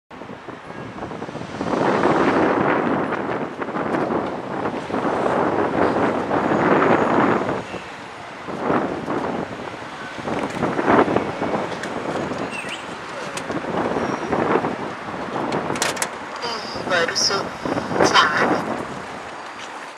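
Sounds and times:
wind buffeting microphone: 0.1 - 19.6
street noise: 0.1 - 19.9.

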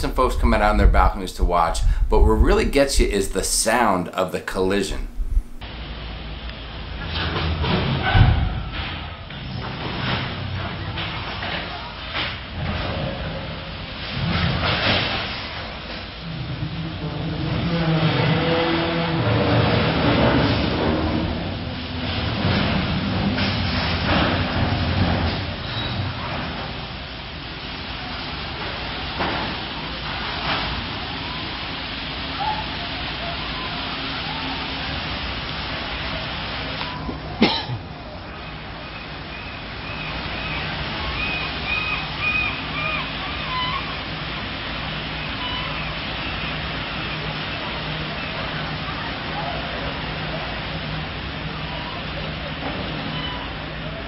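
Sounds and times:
ship hulls grinding and rumbling: 0.0 - 32.4
metal scraping squeals: 25.6 - 26.2, 53.1 - 53.6.

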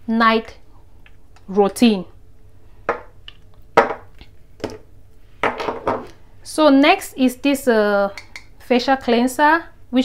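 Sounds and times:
jars knocking on wooden table: 3.8 - 4.8, 5.4 - 6.1.

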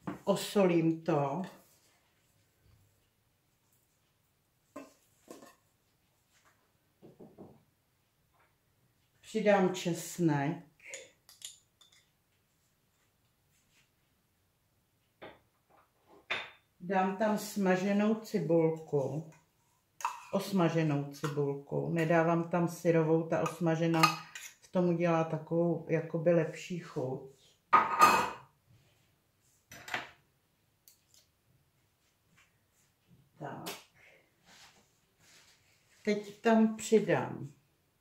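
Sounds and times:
spoon clinking on glass and metal: 10.8 - 12.1
metal spoon scraping a dish: 23.4 - 24.6.

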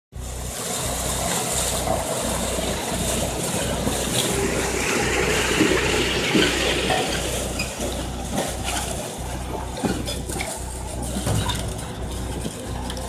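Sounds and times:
road roller engine humming: 0.1 - 13.0.

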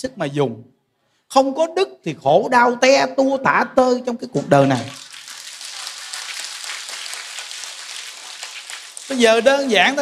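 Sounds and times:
audience applauding: 4.6 - 10.0.

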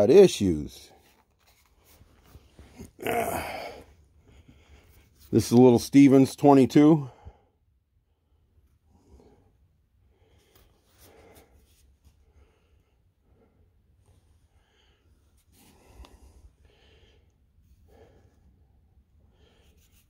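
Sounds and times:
soft rustles: 0.9 - 3.0, 10.3 - 12.3
breaths: 1.0 - 5.3, 7.1 - 20.0.

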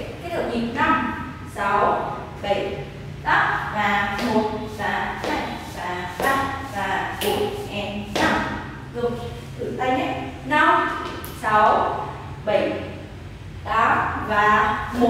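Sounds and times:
woman speaking: 0.0 - 13.0, 13.6 - 15.0
dance steps on wooden floor: 4.1 - 8.6.

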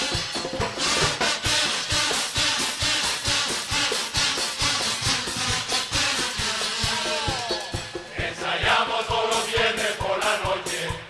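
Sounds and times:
bass drum and snare march beat: 0.0 - 11.0.

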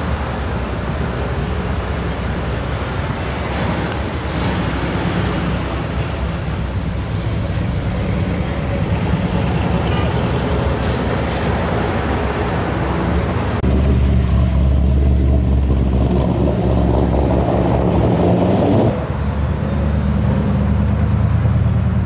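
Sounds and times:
street traffic: 0.0 - 22.0.

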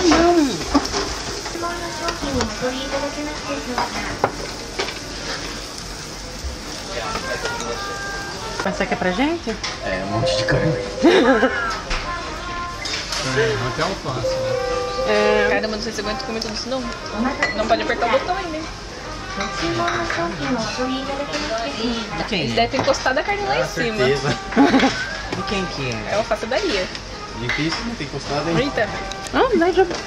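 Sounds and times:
grill sizzling: 0.0 - 30.0
restaurant chatter: 0.0 - 30.0
voices talking: 7.0 - 18.4
plates and dishes clinking: 14.2 - 18.3.

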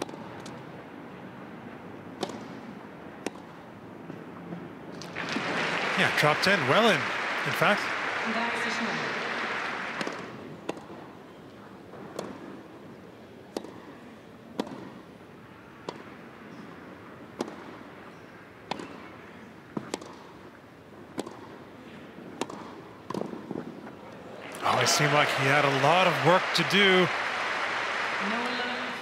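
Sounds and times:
rackets striking tennis ball: 0.0 - 0.7, 2.0 - 3.6, 9.8 - 11.2, 12.0 - 12.7, 13.4 - 15.2, 15.8 - 23.8
applause: 5.0 - 10.4, 24.5 - 29.0.

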